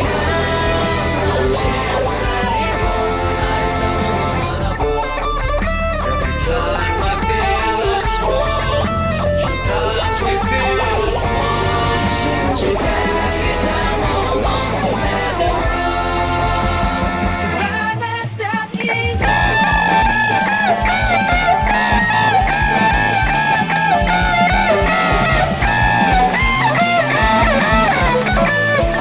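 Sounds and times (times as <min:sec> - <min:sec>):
electric guitar through an amp: 0:00.0 - 0:29.0
rock song with singing: 0:00.0 - 0:29.0.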